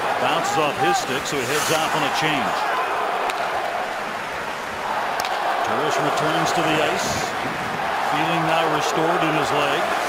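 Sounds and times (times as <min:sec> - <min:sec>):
crowd hubbub in arena: 0:00.0 - 0:10.0.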